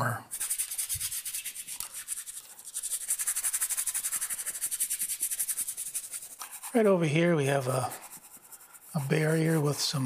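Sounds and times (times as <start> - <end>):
paintbrush scratching on canvas: 0.0 - 10.0.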